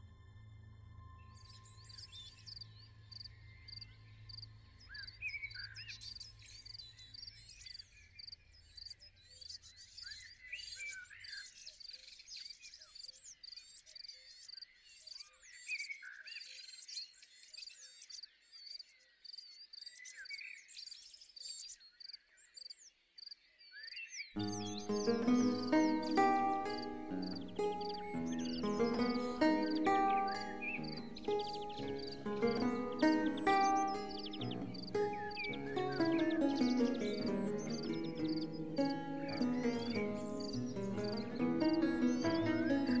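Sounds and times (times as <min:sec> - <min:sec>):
birds singing: 0:23.6 - 0:43.0.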